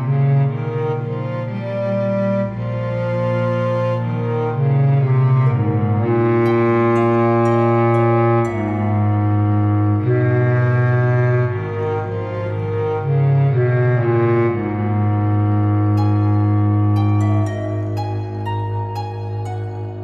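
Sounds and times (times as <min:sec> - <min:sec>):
low bowed strings: 0:00.0 - 0:20.0.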